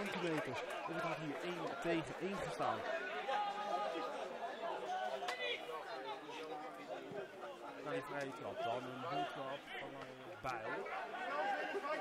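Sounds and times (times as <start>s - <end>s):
chatter of spectators and players: 0.0s - 12.0s.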